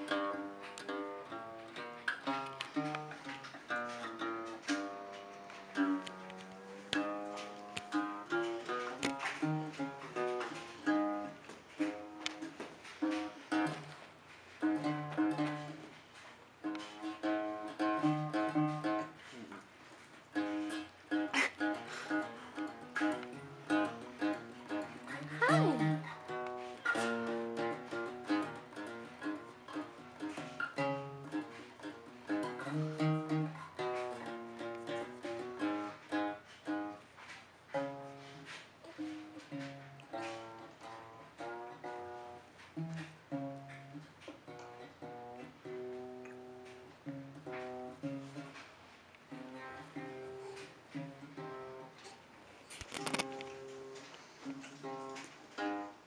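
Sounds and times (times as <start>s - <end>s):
small guitar strummed and picked: 0.0s - 14.0s, 14.6s - 16.0s, 16.6s - 19.3s, 20.3s - 37.0s, 37.7s - 48.7s, 49.3s - 52.1s.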